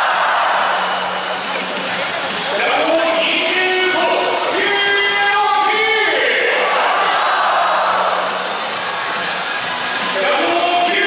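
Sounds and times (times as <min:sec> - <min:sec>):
faint music over loudspeakers: 0:00.0 - 0:11.0
stadium crowd din: 0:00.0 - 0:11.0.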